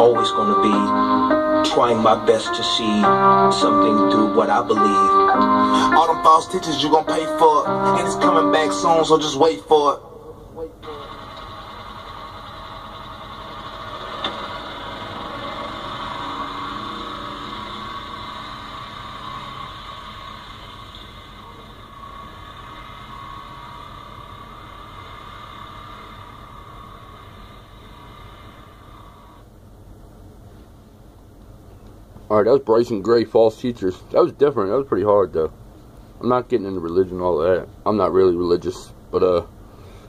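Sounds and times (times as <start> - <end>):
utility vehicle engine driving away: 10.8 - 29.4.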